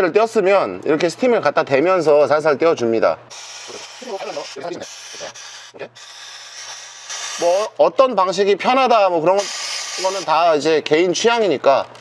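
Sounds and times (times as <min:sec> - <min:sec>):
steam jet hissing: 0:03.3 - 0:07.8, 0:09.4 - 0:10.6
voice: 0:04.0 - 0:05.9, 0:07.4 - 0:11.9.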